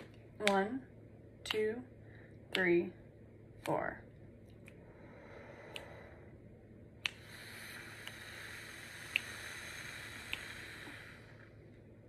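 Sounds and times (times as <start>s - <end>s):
woman breathing: 2.0s - 2.5s, 4.7s - 12.0s
mouth clicks: 5.6s - 6.1s, 7.0s - 11.4s.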